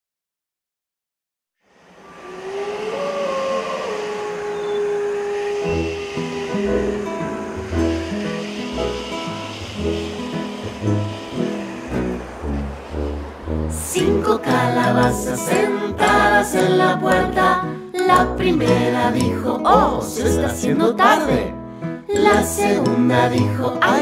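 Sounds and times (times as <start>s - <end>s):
instrumental children's song music: 6.6s - 24.0s.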